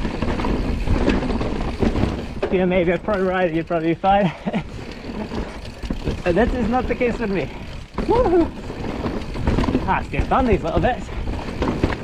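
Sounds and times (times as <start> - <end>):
bike rattling: 0.0 - 12.0
tyres rumbling on dirt: 0.0 - 12.0
sharp knocks over bumps: 5.0 - 12.0.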